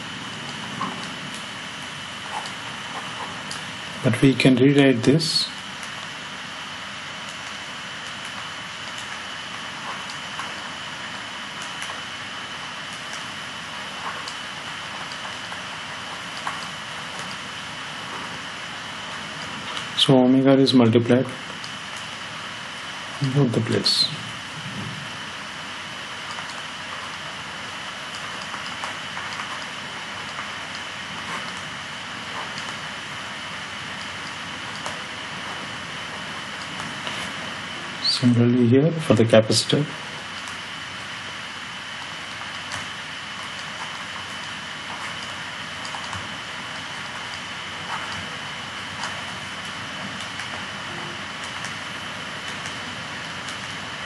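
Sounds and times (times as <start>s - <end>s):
faint high whine: 0.0s - 54.0s
microphone hiss: 0.0s - 54.0s.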